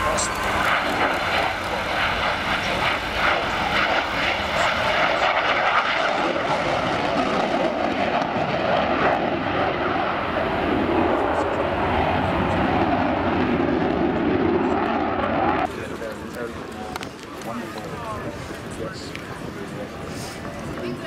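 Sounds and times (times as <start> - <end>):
voices: 0.0 - 5.6
jet engine roar: 0.0 - 21.0.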